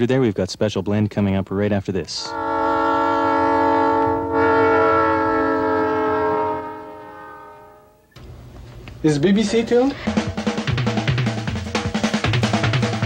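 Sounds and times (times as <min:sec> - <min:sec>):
held chord of steady tones: 0:02.3 - 0:08.2.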